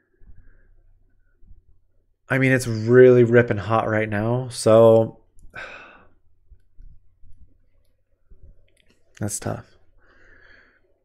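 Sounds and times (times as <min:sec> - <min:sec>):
breathy exhale: 0:05.5 - 0:06.2.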